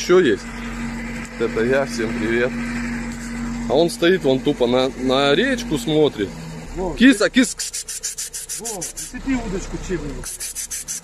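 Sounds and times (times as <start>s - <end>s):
man speaking: 3.7s - 7.7s, 8.5s - 10.3s
rapid high-pitched rasping: 7.4s - 9.6s, 10.2s - 11.0s.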